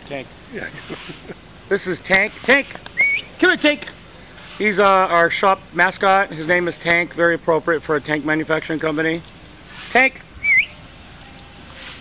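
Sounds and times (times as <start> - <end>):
person whistling for a dog: 3.0 - 3.3, 10.4 - 10.8.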